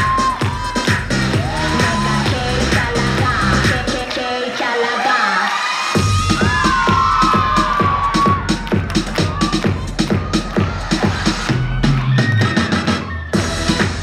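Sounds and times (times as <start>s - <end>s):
pop dance track: 0.0s - 14.0s.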